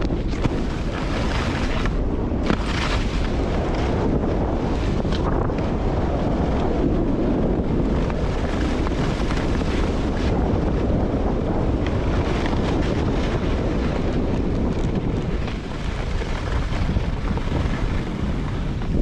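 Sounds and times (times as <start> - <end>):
skis running over packed snow: 0.0 - 19.0
wind rushing over microphone: 0.0 - 19.0.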